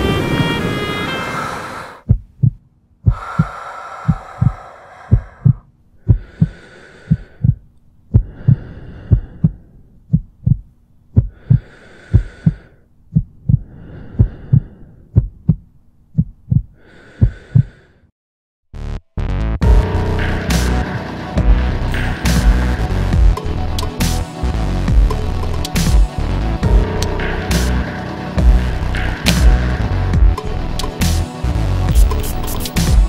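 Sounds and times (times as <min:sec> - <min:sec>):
music: 0:00.0 - 0:01.7, 0:18.8 - 0:33.0
heartbeat thumps: 0:02.0 - 0:17.7, 0:22.3 - 0:23.4, 0:24.9 - 0:27.2, 0:28.4 - 0:30.4, 0:31.9 - 0:33.0.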